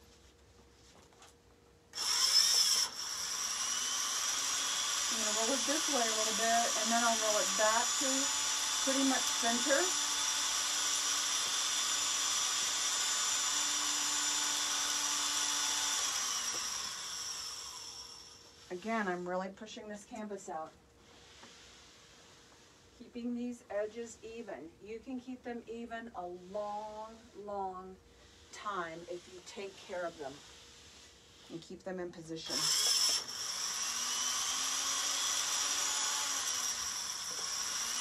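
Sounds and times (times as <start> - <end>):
small electric motor whining: 1.9 - 18.8, 32.4 - 38.0.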